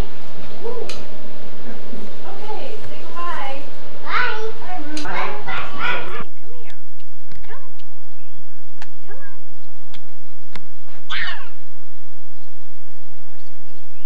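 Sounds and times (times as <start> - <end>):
young child talking: 2.4 - 6.8, 9.0 - 9.4
high child's call: 4.0 - 6.3, 11.1 - 11.6.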